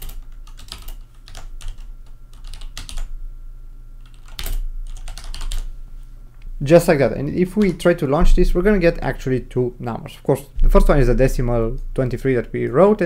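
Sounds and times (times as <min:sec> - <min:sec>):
typing on computer keyboard: 0:00.0 - 0:03.1, 0:04.0 - 0:05.7.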